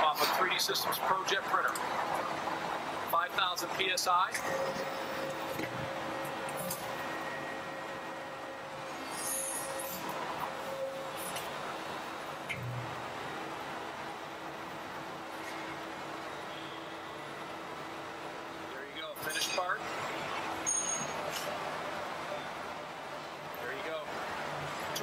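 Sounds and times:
man speaking: 0:00.0 - 0:01.8, 0:03.1 - 0:04.4
faint constant hum: 0:00.0 - 0:25.0
machine noise over speakers: 0:00.0 - 0:25.0.

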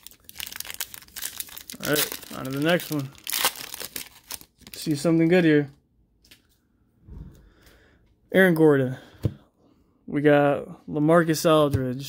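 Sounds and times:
foil wrapper crinkling: 0:00.0 - 0:05.1.

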